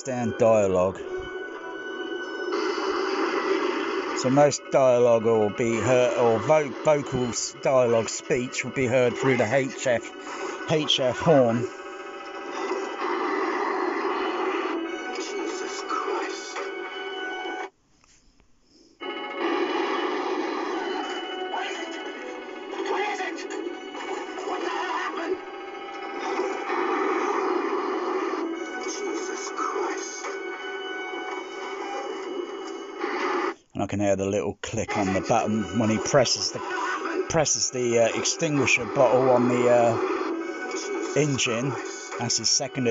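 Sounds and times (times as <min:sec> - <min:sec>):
film dialogue over loudspeakers: 0:00.0 - 0:12.1, 0:19.9 - 0:27.4, 0:33.0 - 0:42.9
film music: 0:00.0 - 0:17.7, 0:19.0 - 0:33.5, 0:34.9 - 0:42.9.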